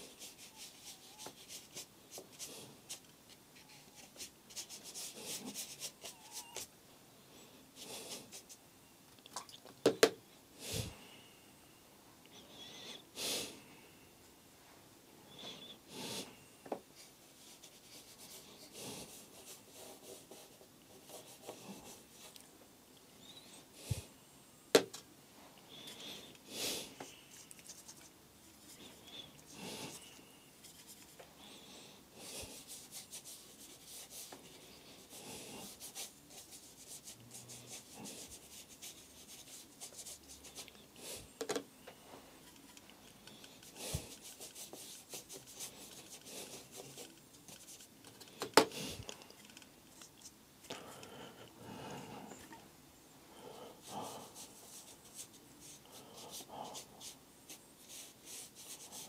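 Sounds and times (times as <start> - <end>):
brush stroking across paper: 0.0 - 6.7, 17.0 - 22.4, 27.0 - 31.2, 32.3 - 41.3, 42.1 - 50.4, 53.8 - 59.0.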